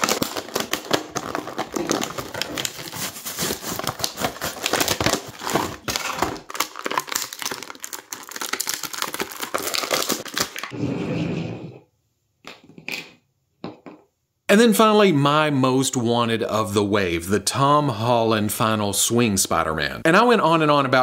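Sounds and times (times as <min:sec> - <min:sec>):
plastic packaging crinkling: 0:00.0 - 0:10.7.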